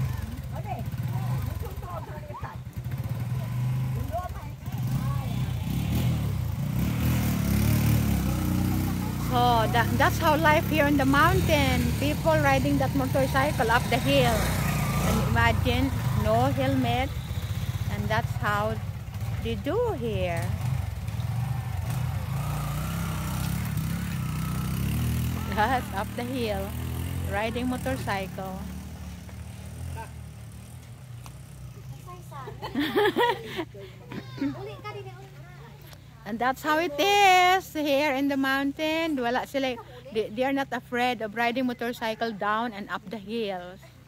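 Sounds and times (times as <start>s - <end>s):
small motorcycle engines running: 0.0s - 44.0s
faint voices chattering: 8.1s - 16.6s.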